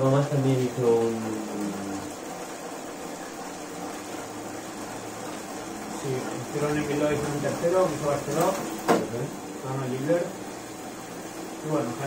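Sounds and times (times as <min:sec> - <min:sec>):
bicycle drivetrain whirring: 0:00.0 - 0:12.0.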